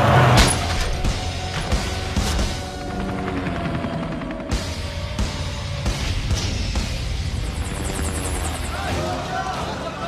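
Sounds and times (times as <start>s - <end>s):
dramatic background music: 0.0s - 10.0s
helicopter rotor chopping: 1.2s - 5.2s, 6.5s - 9.0s.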